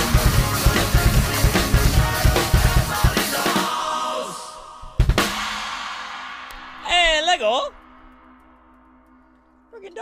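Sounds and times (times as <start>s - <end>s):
crash cymbal ringing: 4.7s - 9.8s
man speaking: 6.8s - 7.8s, 9.7s - 10.0s.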